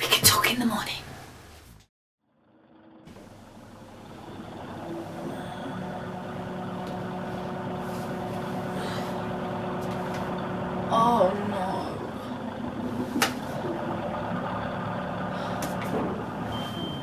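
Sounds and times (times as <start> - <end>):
low hum of held tones: 2.7 - 17.0.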